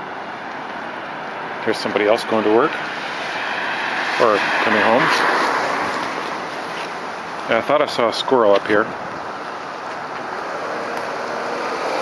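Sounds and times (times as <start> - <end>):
car driving past: 2.7 - 7.4.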